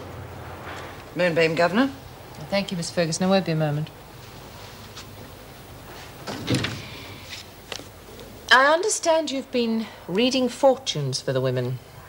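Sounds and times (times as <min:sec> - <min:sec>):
office door shutting: 0:06.2 - 0:07.2.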